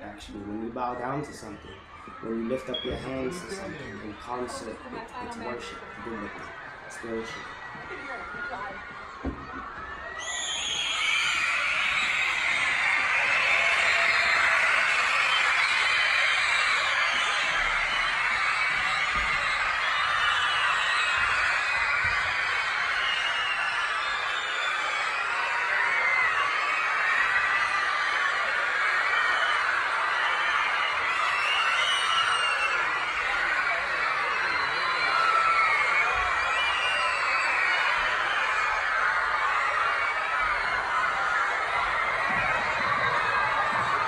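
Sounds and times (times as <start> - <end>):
children screaming and cheering: 0.5 - 44.0.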